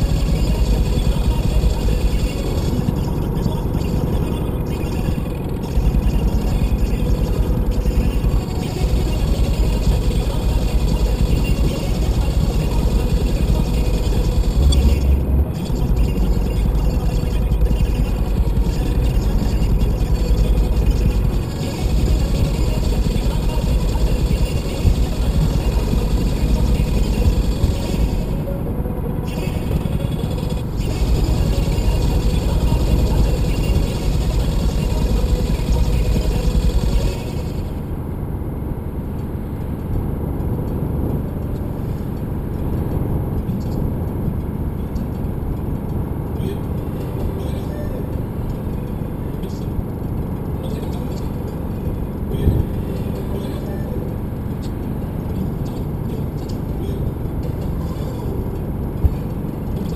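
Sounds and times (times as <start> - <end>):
car engine drone: 0.0 - 59.9
tyre and road rumble: 0.0 - 59.9.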